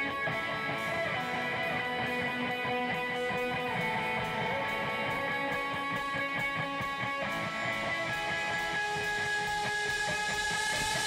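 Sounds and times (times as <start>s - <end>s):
electric guitar picking: 0.0s - 11.0s
live band playing: 0.0s - 11.0s.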